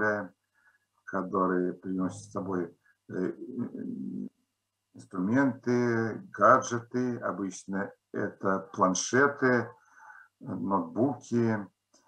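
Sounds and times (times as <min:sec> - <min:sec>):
person speaking with hesitation sound: 0:01.2 - 0:04.3, 0:05.0 - 0:09.7, 0:10.4 - 0:11.6.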